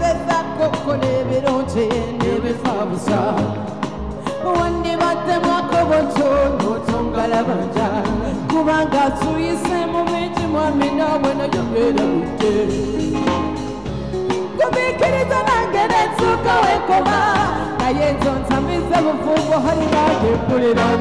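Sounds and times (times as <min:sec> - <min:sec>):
woman singing into microphone: 0:00.0 - 0:13.6, 0:14.4 - 0:21.0
live band playing pop song: 0:00.0 - 0:21.0
steady drum beat: 0:00.0 - 0:21.0.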